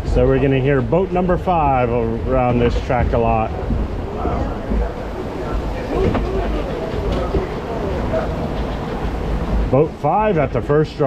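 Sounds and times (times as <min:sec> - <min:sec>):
boat rumbling: 0:00.0 - 0:11.0
faint voices: 0:00.0 - 0:11.0
rushing water: 0:00.0 - 0:11.0.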